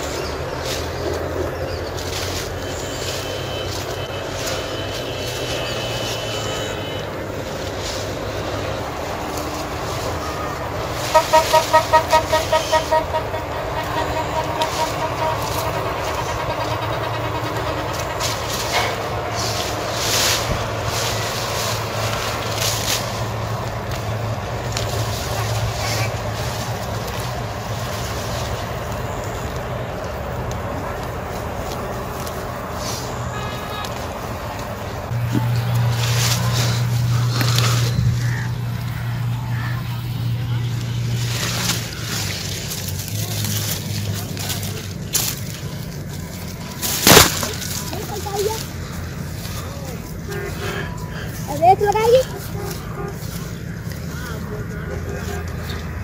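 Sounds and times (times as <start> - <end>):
leaves rustling pushed by hand: 0.0 - 16.3, 17.9 - 38.4, 40.4 - 56.0
vehicle engine humming: 0.0 - 56.0.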